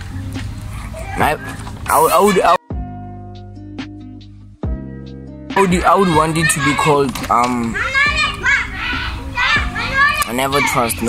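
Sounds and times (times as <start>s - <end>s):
faint background music: 0.0s - 11.0s
children calling out in play: 0.6s - 2.7s, 5.6s - 11.0s.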